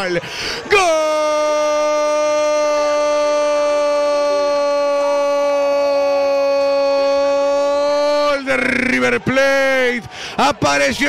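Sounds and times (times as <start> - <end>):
commentator's long goal cry: 0.6 - 9.2.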